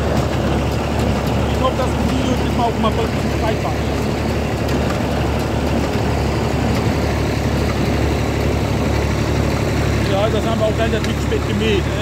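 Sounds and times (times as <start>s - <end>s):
tractor engine running under load: 0.0s - 12.0s.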